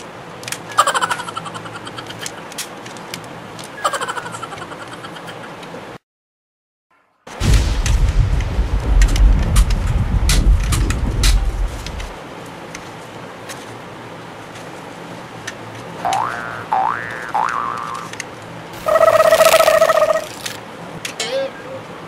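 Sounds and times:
explosion rumble with crackles: 0:07.3 - 0:12.2
rising boing-like sweeps: 0:16.1 - 0:18.1.

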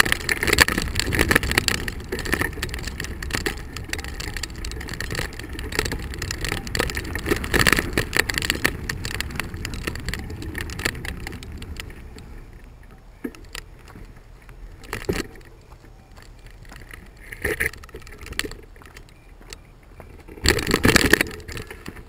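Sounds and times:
bicycle rattling over bumps: 0:00.0 - 0:22.0
bicycle tyres crunching on gravel: 0:00.0 - 0:22.0.

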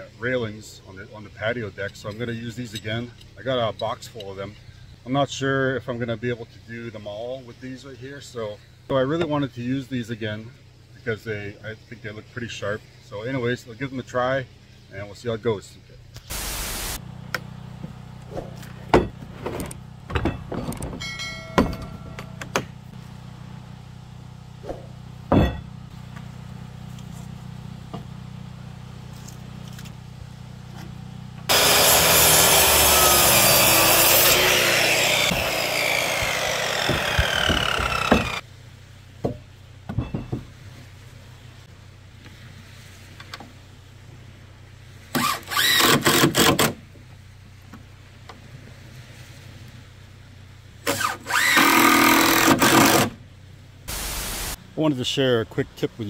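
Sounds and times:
circular saw cutting wood: 0:31.5 - 0:38.4, 0:45.2 - 0:46.7, 0:50.8 - 0:53.2
cordless drill driving screws: 0:31.5 - 0:38.4, 0:45.2 - 0:46.7, 0:50.9 - 0:53.1.

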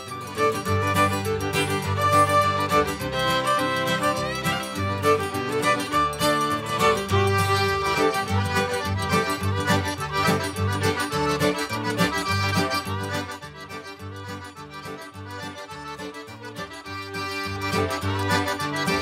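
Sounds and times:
cajun accordion music: 0:00.0 - 0:19.0.

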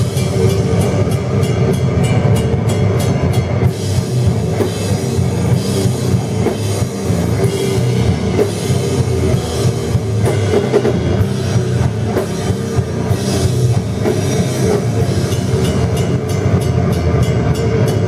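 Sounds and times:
distorted guitars and bass: 0:00.0 - 0:18.0
drum kit and cymbals: 0:00.0 - 0:18.0.

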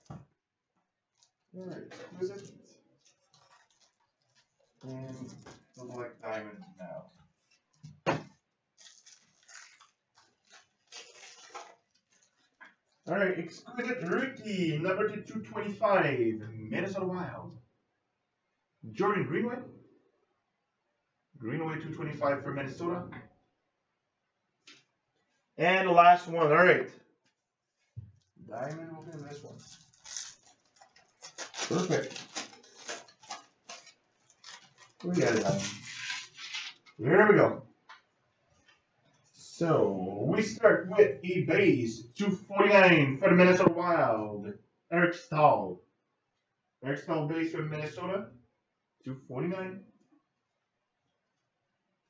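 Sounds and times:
foil wrapper crinkling: 0:01.1 - 0:06.0, 0:07.4 - 0:13.0, 0:28.2 - 0:37.0
cards being handled: 0:28.7 - 0:37.0.

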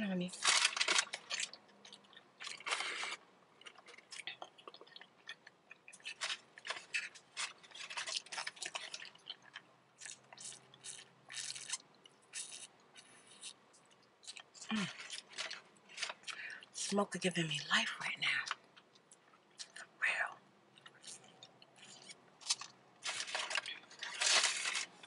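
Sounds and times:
chewing crunches: 0:00.4 - 0:16.8, 0:20.7 - 0:25.0.

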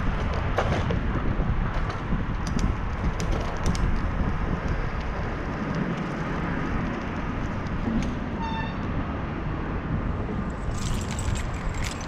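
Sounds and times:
bicycle road noise: 0:00.0 - 0:12.0
wind rumbling on microphone: 0:00.0 - 0:12.0.

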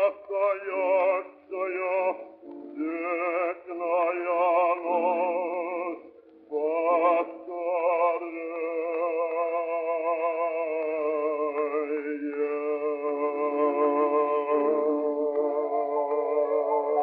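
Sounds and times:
bass voice singing with vibrato: 0:02.8 - 0:17.0.

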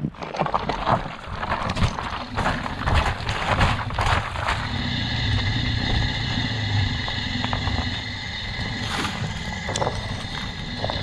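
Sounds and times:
bike rolling on snow: 0:00.0 - 0:11.0
wind rumbling on microphone: 0:00.0 - 0:11.0.

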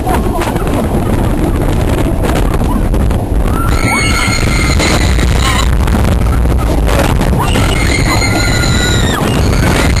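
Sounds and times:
roller coaster on wooden track: 0:00.0 - 0:10.0
wind on microphone: 0:00.0 - 0:10.0
riders screaming: 0:03.5 - 0:10.0.

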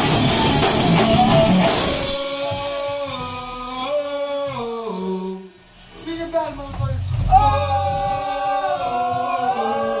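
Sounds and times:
rock band playing: 0:00.0 - 0:03.0.

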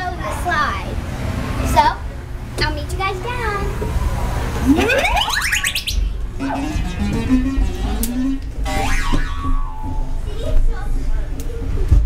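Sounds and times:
children's voices: 0:00.0 - 0:04.1, 0:10.1 - 0:12.0
electronic whooping pitch sweep: 0:04.5 - 0:10.4.

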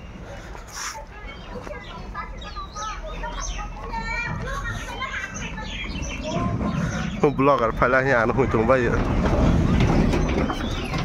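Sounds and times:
children chattering: 0:00.0 - 0:11.0.

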